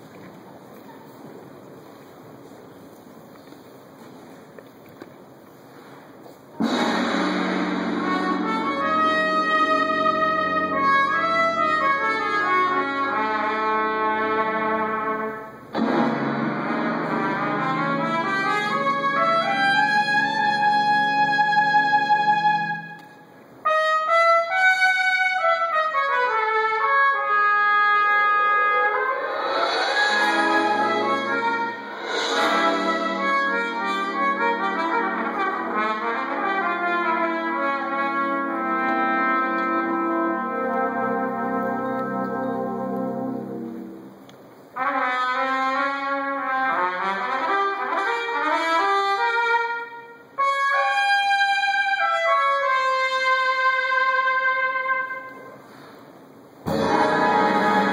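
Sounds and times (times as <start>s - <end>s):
brass band sustained chords: 6.6s - 22.8s, 23.6s - 44.2s, 56.6s - 57.9s.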